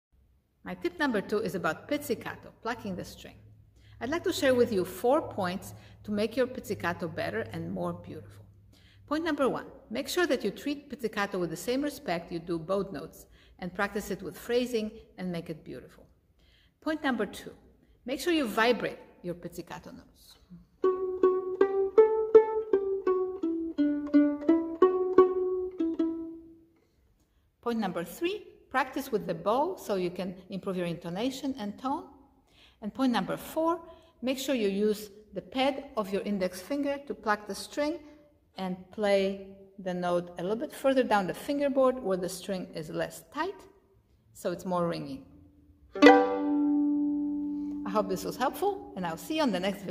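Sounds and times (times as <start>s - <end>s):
violin pizzicato notes: 20.5s - 26.7s, 45.9s - 48.9s.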